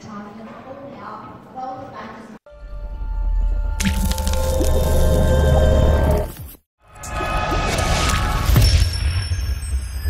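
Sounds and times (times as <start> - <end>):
low drone music: 2.5 - 6.3
wet splat sound effect: 3.8 - 5.0.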